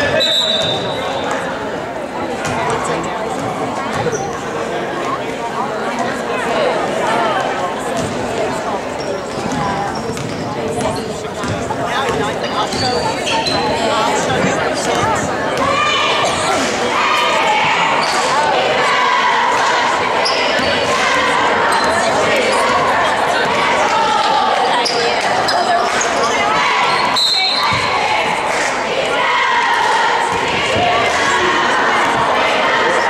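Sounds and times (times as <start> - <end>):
voices of spectators and players: 0.0 - 33.0.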